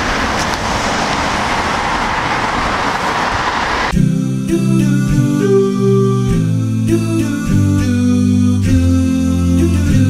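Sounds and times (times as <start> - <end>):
road traffic passing: 0.0 - 4.0.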